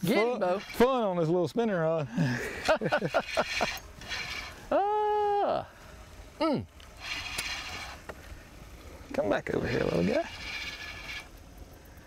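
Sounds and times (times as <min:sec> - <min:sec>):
fishing reel whirring: 0:00.2 - 0:01.0, 0:02.9 - 0:04.8, 0:06.8 - 0:08.1, 0:09.4 - 0:12.0
sharp reel clicks: 0:03.1 - 0:04.6, 0:06.8 - 0:08.2, 0:09.6 - 0:12.0.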